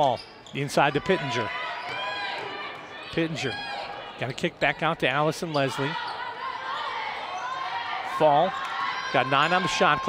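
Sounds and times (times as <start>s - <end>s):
basketball play on court: 0.0s - 10.0s.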